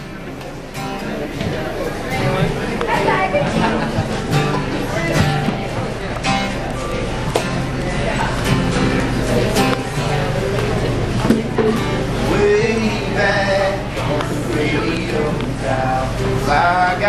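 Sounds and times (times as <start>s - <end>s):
acoustic guitar strumming: 0.0s - 17.0s
voices of audience: 0.0s - 17.0s.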